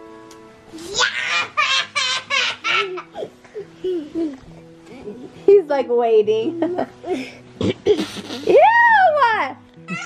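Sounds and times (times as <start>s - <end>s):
soft background music: 0.0s - 10.0s
young child giggling: 1.3s - 4.4s, 7.9s - 8.5s.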